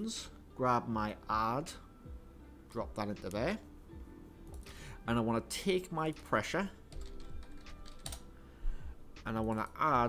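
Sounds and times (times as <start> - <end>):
keyboard typing: 6.9 - 8.3.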